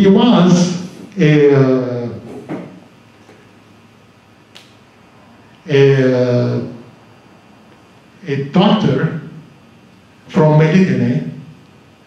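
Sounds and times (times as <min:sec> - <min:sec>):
sharp click: 0:04.5 - 0:04.8.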